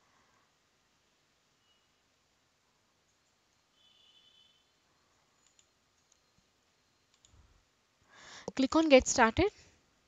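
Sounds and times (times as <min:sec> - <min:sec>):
computer mouse clicks: 0:05.4 - 0:06.4, 0:07.1 - 0:07.4.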